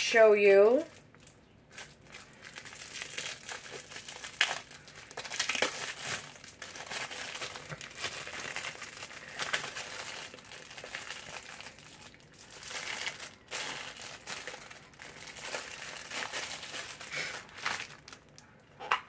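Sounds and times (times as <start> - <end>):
plastic packaging crinkling: 0.8 - 19.0.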